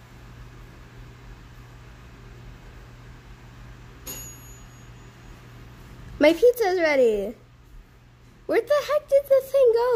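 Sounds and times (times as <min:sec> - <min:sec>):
steady low hum: 0:00.0 - 0:09.9
high timer ding: 0:04.0 - 0:05.3.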